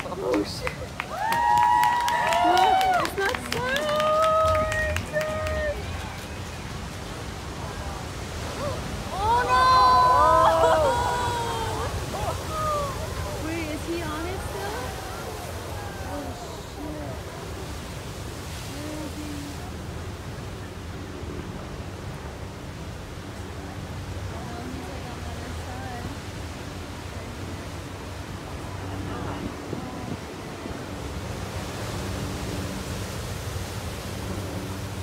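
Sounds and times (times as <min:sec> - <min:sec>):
heavy surf breaking: 0:00.0 - 0:35.0.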